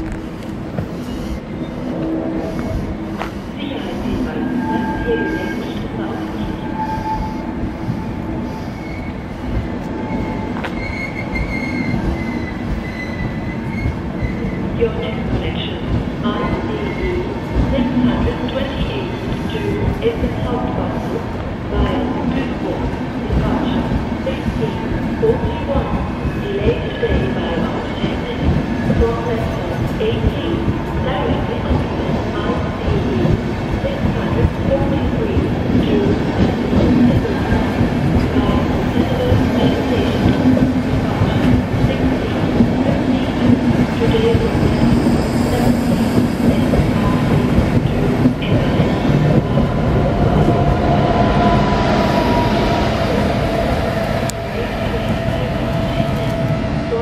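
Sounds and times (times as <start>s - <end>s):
electric locomotive whine: 0.0s - 57.0s
train wheels rumbling on rails: 0.0s - 57.0s.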